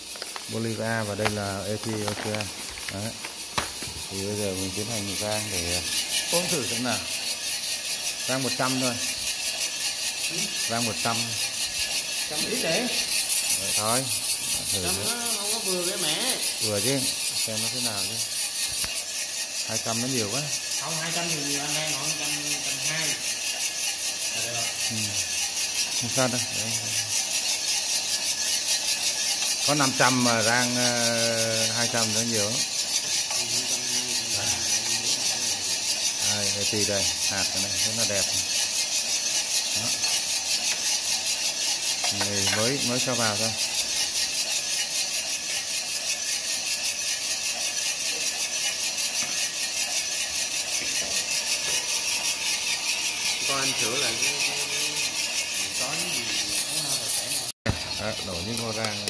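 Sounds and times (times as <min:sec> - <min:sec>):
gas burner hissing: 0:00.0 - 0:59.0
roaster drum rattling: 0:00.0 - 0:59.0.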